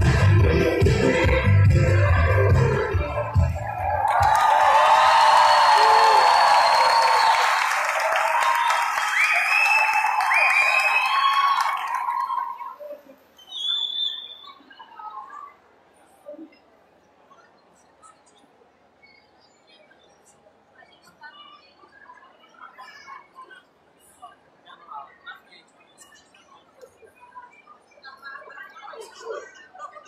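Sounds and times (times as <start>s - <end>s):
dance music over speakers: 0.0s - 4.3s
audience cheering: 2.1s - 12.8s
audience applause: 3.6s - 12.8s.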